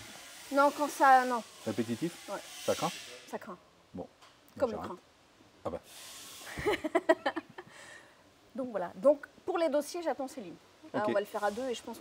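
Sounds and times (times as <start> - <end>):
person laughing: 6.5 - 7.7.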